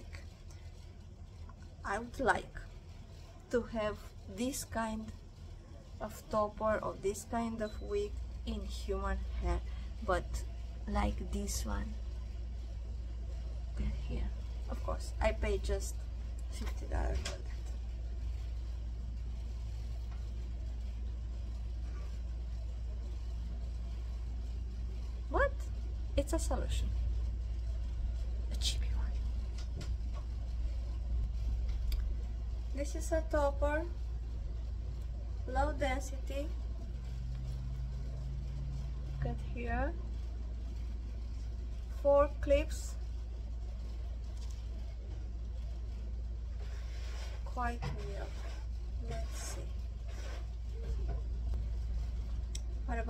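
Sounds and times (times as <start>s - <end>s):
low background hum: 0.0s - 53.0s
rustle of hair being handled: 46.4s - 52.5s.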